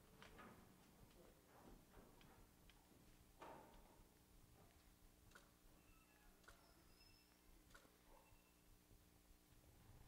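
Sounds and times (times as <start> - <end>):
faint clicks: 5.3 - 5.6.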